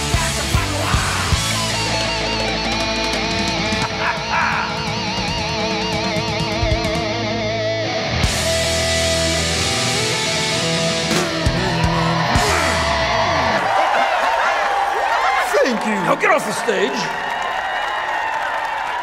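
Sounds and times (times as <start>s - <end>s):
distorted electric guitars: 0.0s - 13.6s
bass guitar: 0.0s - 13.7s
drums: 0.0s - 13.8s.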